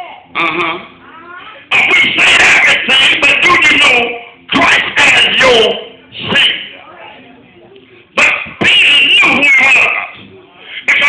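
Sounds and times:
man shouting through distorted pa: 1.7s - 6.7s, 8.2s - 10.2s.

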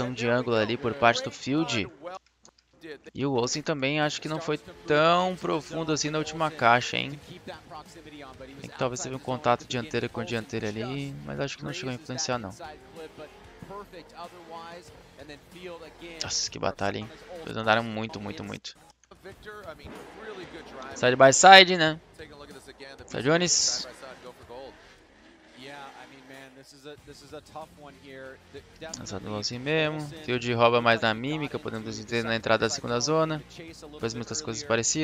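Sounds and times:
person speaking: 0.0s - 2.0s, 3.1s - 7.3s, 8.6s - 13.3s, 16.2s - 18.7s, 20.7s - 22.0s, 23.0s - 24.0s, 29.0s - 33.4s
faint music: 0.0s - 2.2s, 2.8s - 35.0s
surrounding talk: 0.0s - 2.2s.

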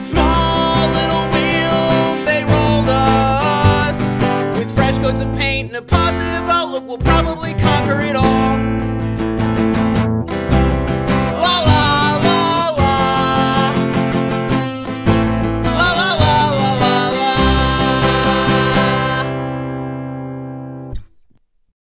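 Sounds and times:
acoustic guitar strumming: 0.0s - 21.4s.

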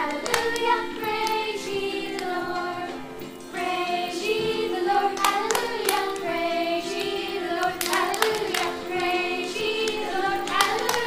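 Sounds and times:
children and woman singing: 0.0s - 11.0s
hand claps: 0.0s - 11.0s.

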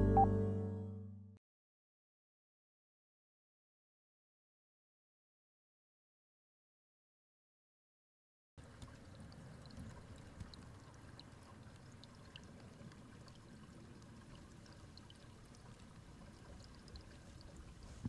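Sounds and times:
trickle of running water: 8.6s - 18.0s.

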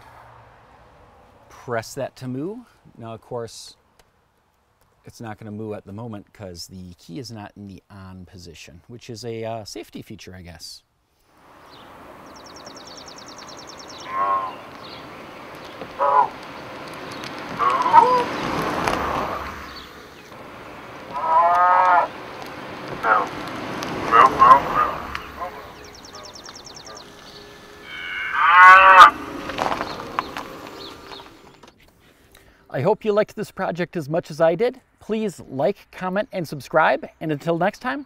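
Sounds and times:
cow moos from loudspeaker horn: 14.0s - 14.6s, 21.1s - 22.1s, 27.8s - 29.2s.

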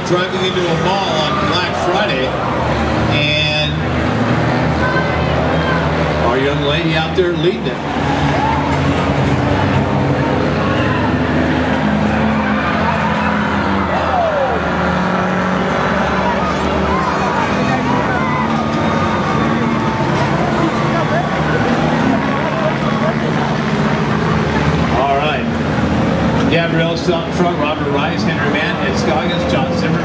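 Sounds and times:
race car engines at steady revs: 0.0s - 30.0s.

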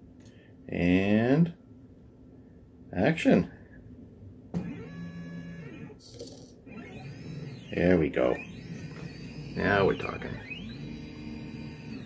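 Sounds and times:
stepper motors whining: 4.6s - 6.0s, 6.7s - 12.0s.

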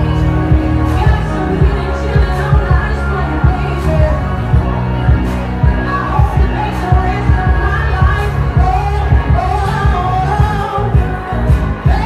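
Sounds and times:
backing track with heavy bass beat: 0.0s - 12.0s
woman singing into a microphone: 0.0s - 12.0s.

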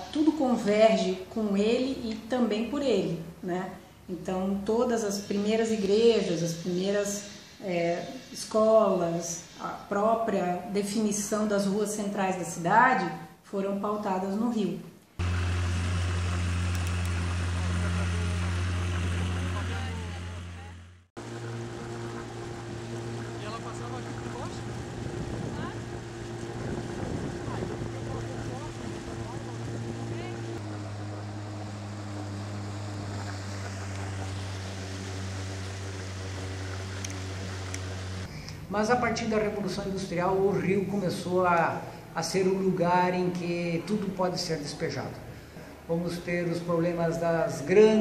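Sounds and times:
boat motor running: 15.2s - 41.1s
wind and water noise: 21.2s - 48.0s.

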